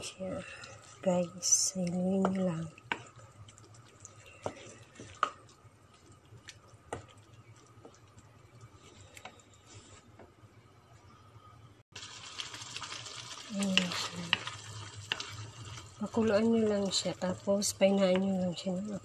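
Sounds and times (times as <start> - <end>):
sauce sizzling: 0.0 - 10.0, 11.9 - 19.0.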